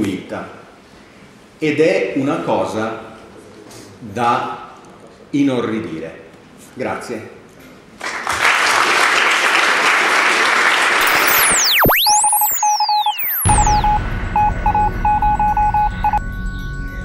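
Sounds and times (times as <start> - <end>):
whistle-like electronic glides: 11.0 - 15.9
short electronic beeps: 11.0 - 16.2
music: 13.4 - 17.0.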